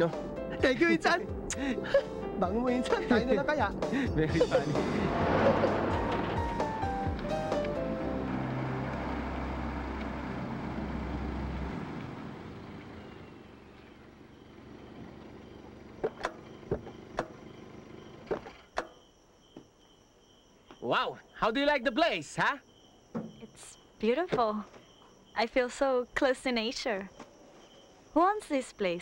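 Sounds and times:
film score music: 0:00.0 - 0:11.8
crickets chirping: 0:00.0 - 0:29.0
car engine running: 0:04.4 - 0:18.5
car doors opening and shutting: 0:05.2 - 0:08.0, 0:15.9 - 0:18.9.

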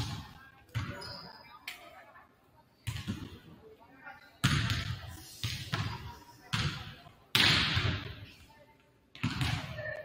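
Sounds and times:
basketballs bouncing on gym floor: 0:00.0 - 0:01.2, 0:02.8 - 0:03.5, 0:04.4 - 0:08.3, 0:09.1 - 0:10.0.

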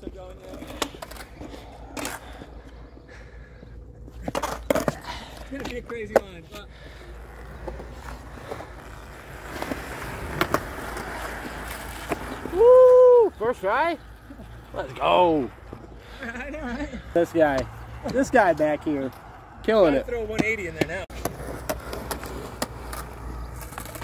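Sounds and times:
skateboard wheels rolling on concrete: 0:00.0 - 0:24.0
skateboard clacking on ground: 0:04.0 - 0:12.5, 0:20.3 - 0:24.0
loud whooping shout: 0:12.5 - 0:13.4.

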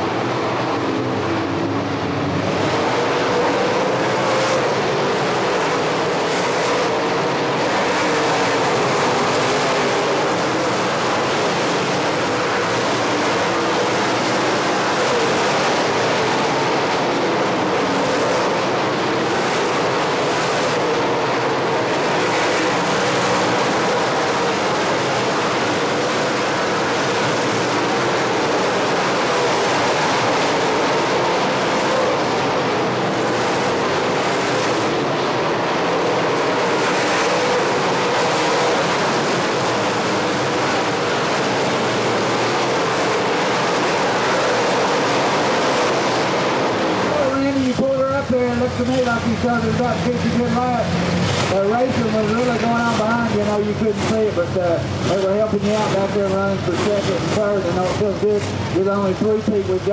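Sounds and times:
race car engines running: 0:00.0 - 0:59.9.

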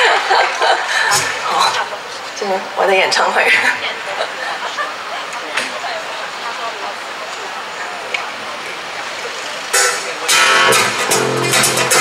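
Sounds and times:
electric guitar chords: 0:09.7 - 0:12.0.

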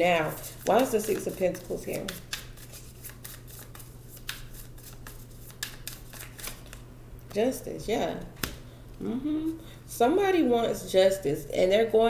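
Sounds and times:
low steady hum: 0:00.0 - 0:12.0
cards being shuffled: 0:00.3 - 0:06.8.

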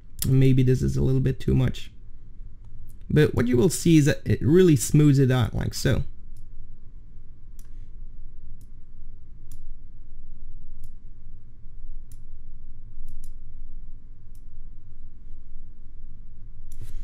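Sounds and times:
steady low hum: 0:00.0 - 0:17.0
computer mouse clicking: 0:13.0 - 0:13.4.

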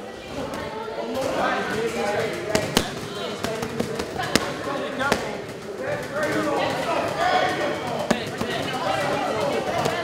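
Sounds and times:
boxing gloves smacking focus mitts: 0:02.5 - 0:05.4.

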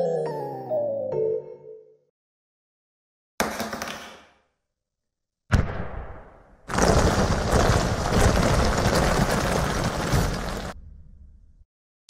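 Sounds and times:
large stone mass collapsing: 0:06.6 - 0:10.8.

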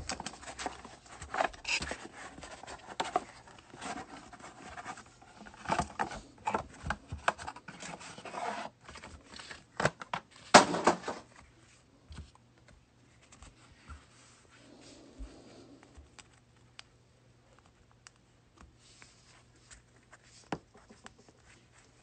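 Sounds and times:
cards rustling and clicking: 0:00.0 - 0:14.1.

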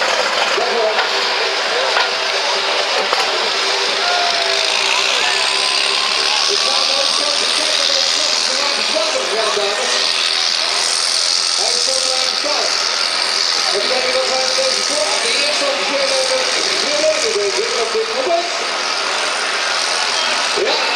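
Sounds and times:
diesel engine idling: 0:00.0 - 0:20.9
voices talking: 0:00.0 - 0:20.9.

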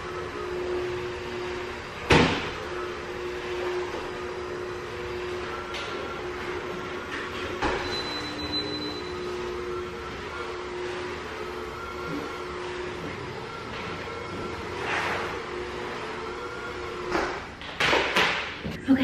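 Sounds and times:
steam mop humming and hissing: 0:00.0 - 0:17.4.

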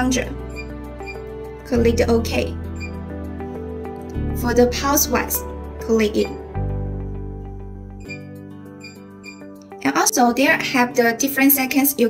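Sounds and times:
soft background music: 0:00.0 - 0:12.0
short high beeps: 0:00.5 - 0:01.2, 0:02.8 - 0:03.0, 0:08.0 - 0:08.2, 0:08.8 - 0:09.4.

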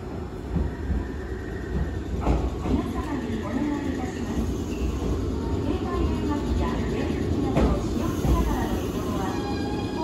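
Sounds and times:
train rumbling: 0:00.0 - 0:10.0.

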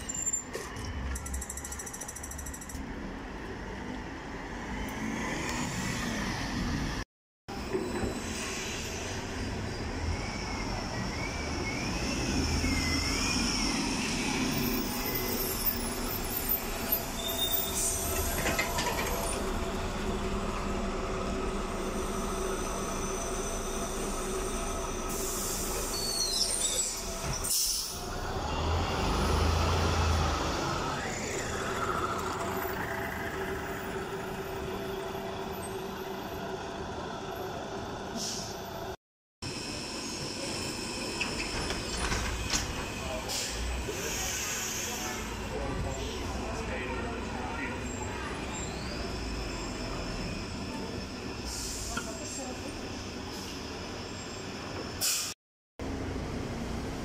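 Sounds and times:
buses running in traffic: 0:00.0 - 0:57.0.

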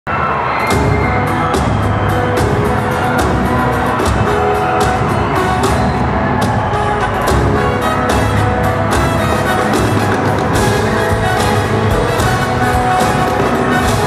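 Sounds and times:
live band held chords: 0:00.6 - 0:14.0.

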